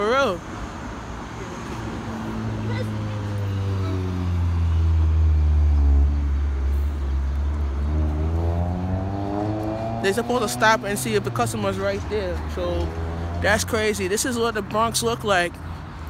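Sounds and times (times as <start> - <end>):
vehicle engine passing by: 1.6 - 14.0.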